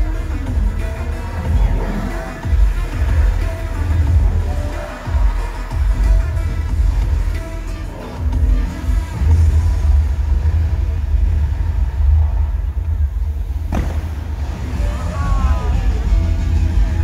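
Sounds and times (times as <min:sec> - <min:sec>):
soundtrack over loudspeakers: 0:00.0 - 0:17.0.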